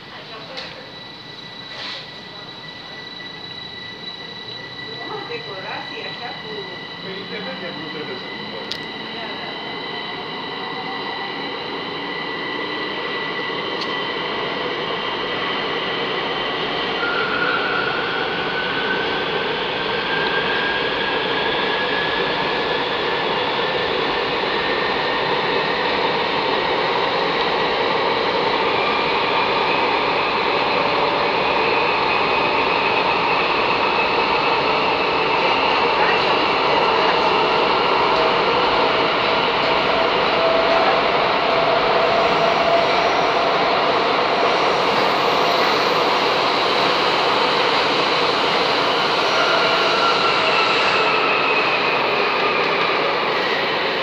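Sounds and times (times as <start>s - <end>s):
train equipment rushing hum: 0.0s - 54.0s.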